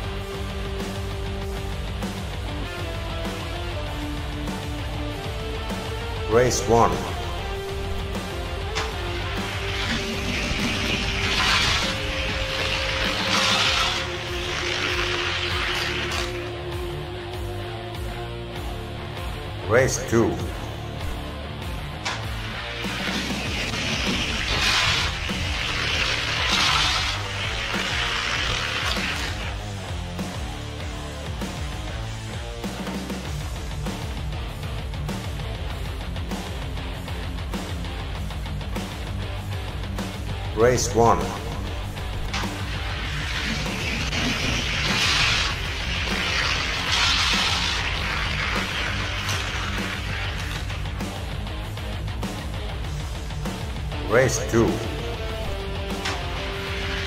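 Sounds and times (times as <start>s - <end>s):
rock music: 0.0s - 57.0s
toy cars rolling on plastic track: 8.8s - 16.5s, 22.8s - 29.6s, 42.3s - 51.0s.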